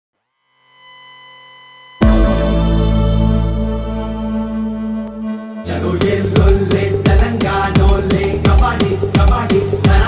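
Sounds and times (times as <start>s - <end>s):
synthesized electronic tone: 0.2s - 6.9s.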